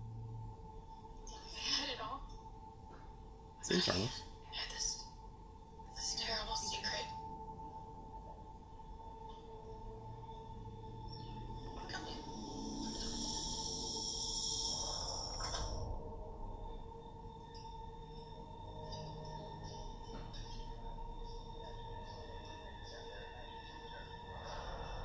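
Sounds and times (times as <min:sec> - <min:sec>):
horror trailer drawn-out tones: 0:09.0 - 0:25.0
high shimmering layer: 0:10.7 - 0:25.0.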